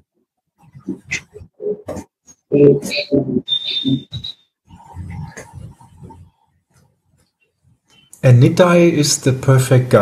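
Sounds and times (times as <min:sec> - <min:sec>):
high whistle-like tone: 0:02.9 - 0:04.5.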